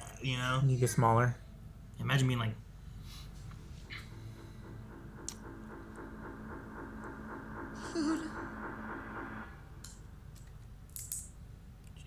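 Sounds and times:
low hum: 2.6s - 12.0s.

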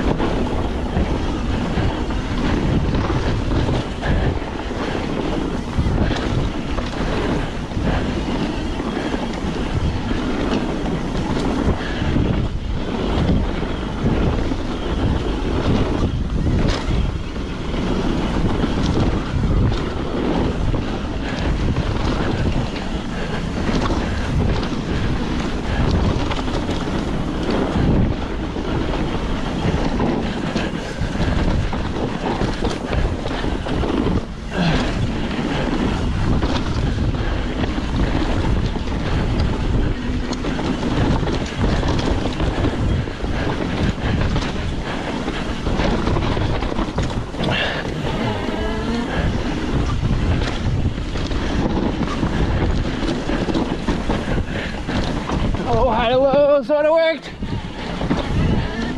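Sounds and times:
bike frame and chain rattling: 0.0s - 58.9s
bike tyres rolling over dirt: 0.0s - 58.9s
wind rushing over microphone: 0.0s - 58.9s.

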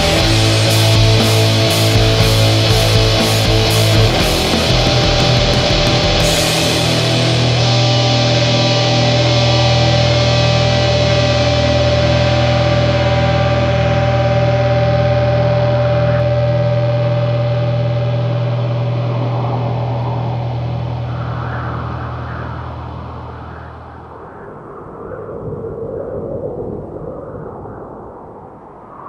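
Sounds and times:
distorted guitar and bass chord: 0.0s - 24.4s
rushing whooshing noise: 18.6s - 29.0s.

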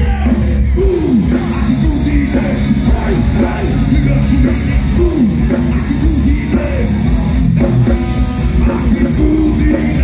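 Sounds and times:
heavy metal band playing live: 0.0s - 10.0s.

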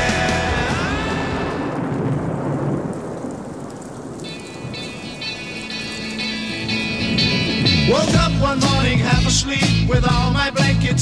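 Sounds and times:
steady rushing noise: 0.3s - 9.1s.

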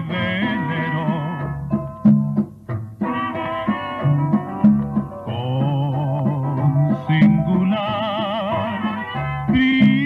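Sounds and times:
dance band music: 0.0s - 10.0s.

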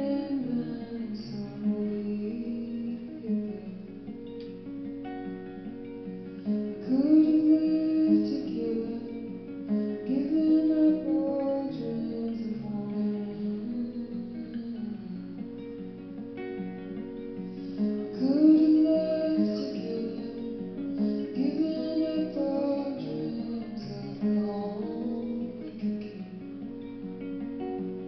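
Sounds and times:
woman singing: 0.0s - 4.4s, 6.3s - 16.2s, 17.4s - 27.0s
plucked acoustic guitar: 0.0s - 28.0s.

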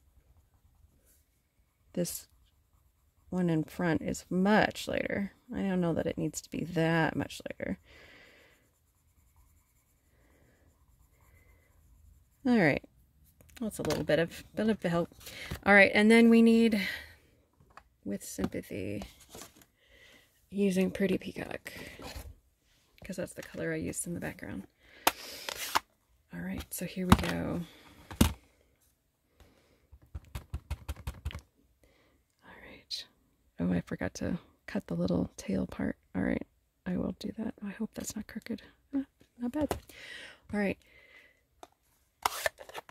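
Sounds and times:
colored pencil shading on card: 0.0s - 15.1s.

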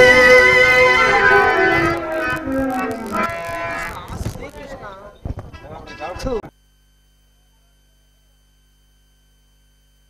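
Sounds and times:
quiet voices: 0.0s - 6.5s.

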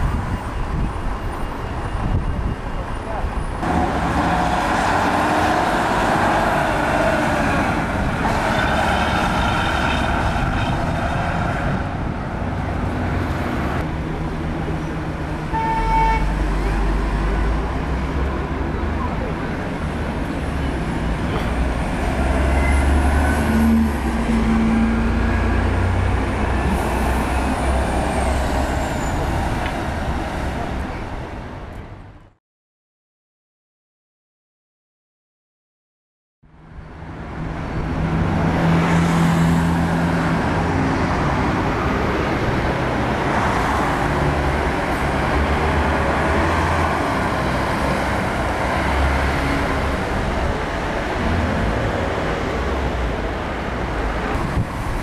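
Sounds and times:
buses and cars passing: 0.0s - 32.4s, 36.5s - 55.0s
car horn toot: 15.5s - 16.4s.

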